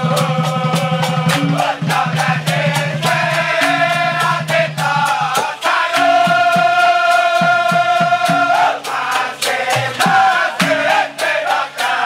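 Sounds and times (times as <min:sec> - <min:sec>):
male voices singing a long note: 0:00.0 - 0:12.0
quick percussive strokes: 0:00.0 - 0:12.0.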